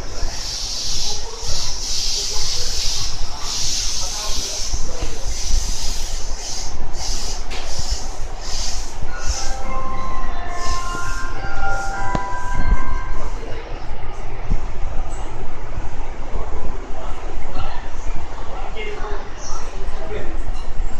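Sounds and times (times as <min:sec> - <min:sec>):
whining tones of train: 0:00.0 - 0:18.5
electric train slowing to a stop: 0:00.0 - 0:18.6.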